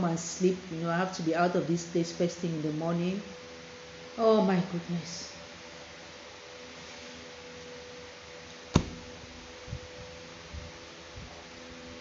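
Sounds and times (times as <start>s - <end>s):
steady low hiss: 0.0s - 12.0s
sharp knock: 8.8s - 9.0s.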